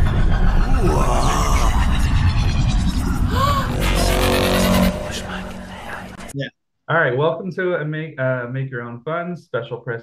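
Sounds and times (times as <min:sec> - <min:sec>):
swooping electronic tones: 0:00.0 - 0:06.3
deep rumble: 0:00.0 - 0:06.4.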